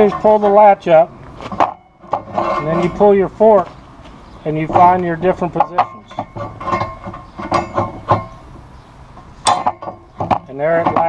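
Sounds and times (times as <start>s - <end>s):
metal clunks: 0.0s - 11.0s
steel fork scraping on bar: 1.6s - 3.6s, 4.6s - 8.4s.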